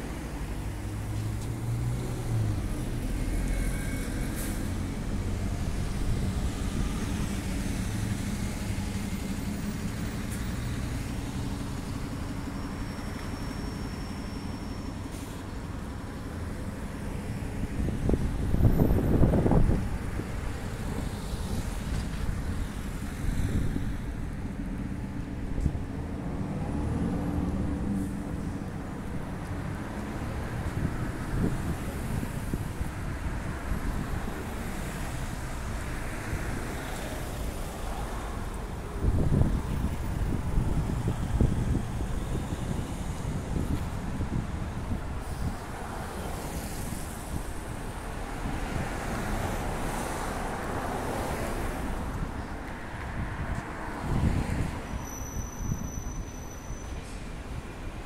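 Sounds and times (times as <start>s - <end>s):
cars driving past: 0.0s - 58.0s.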